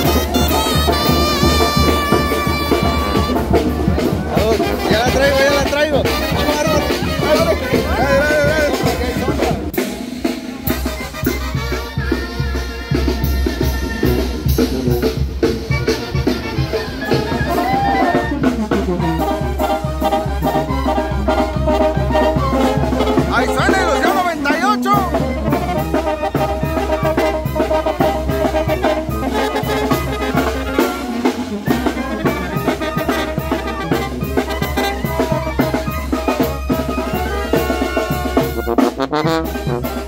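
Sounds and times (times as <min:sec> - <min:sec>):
brass band playing a march: 0:00.0 - 0:40.0.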